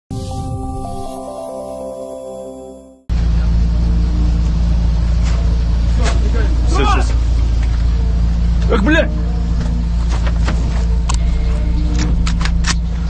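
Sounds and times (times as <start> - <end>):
truck engine running: 3.1 - 13.0.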